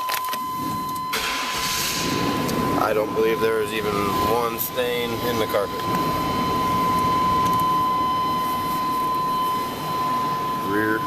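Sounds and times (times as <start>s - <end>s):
machine whirring with high whine: 0.0s - 11.0s.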